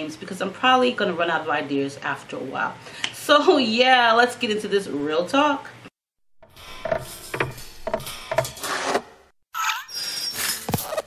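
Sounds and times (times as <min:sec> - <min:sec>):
springy thumps with squeaks: 0:06.4 - 0:11.0.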